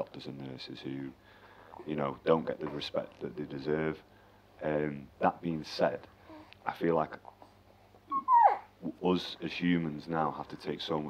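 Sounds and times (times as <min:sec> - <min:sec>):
high-pitched whimper: 0:08.1 - 0:09.0.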